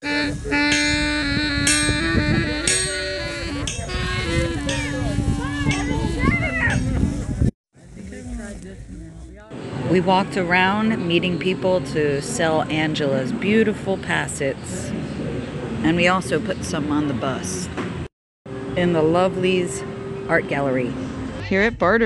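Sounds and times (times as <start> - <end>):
music with held melody: 0.0 - 7.2
people talking: 2.0 - 14.9, 15.8 - 17.7, 18.7 - 22.0.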